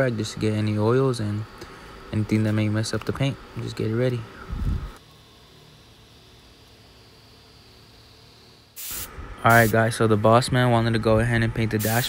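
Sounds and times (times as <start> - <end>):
loud burst of hiss: 8.7 - 9.9, 11.8 - 12.0.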